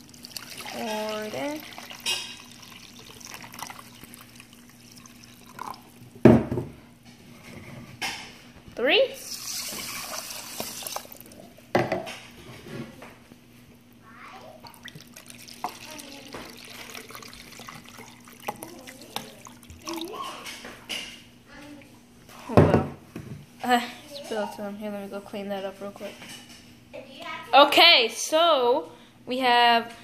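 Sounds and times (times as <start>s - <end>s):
water pouring into a metal pot: 0.0s - 6.1s, 9.2s - 11.4s, 14.6s - 20.5s
tap running into a jug: 9.3s - 12.0s, 14.6s - 20.7s.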